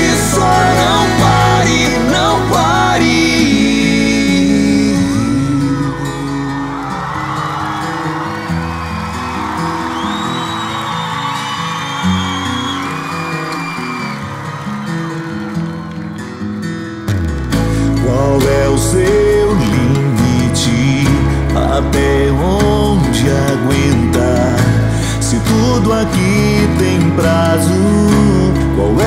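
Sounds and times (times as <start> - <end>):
high voices whooping: 0.0 - 16.5
acoustic pop-rock band playing: 0.0 - 29.0.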